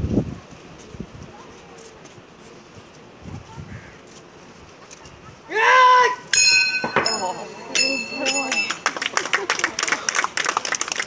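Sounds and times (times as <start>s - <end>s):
man shouting: 5.5s - 6.3s
ringing metallic clang: 6.3s - 9.0s.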